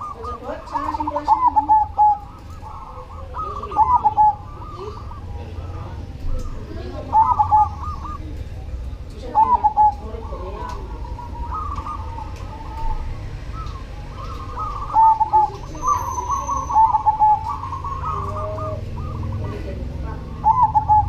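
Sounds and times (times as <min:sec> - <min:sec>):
dove cooing: 0:00.0 - 0:21.0.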